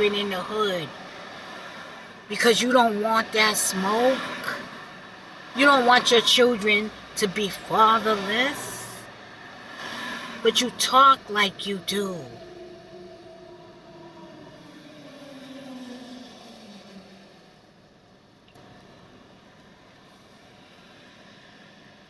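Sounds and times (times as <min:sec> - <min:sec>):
faint background noise: 0:00.0 - 0:22.0.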